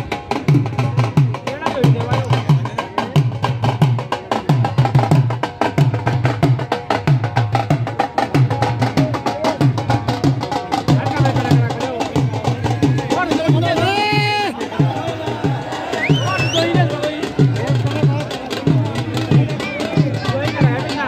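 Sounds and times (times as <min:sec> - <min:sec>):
dhol drum fast rhythm: 0:00.0 - 0:21.0.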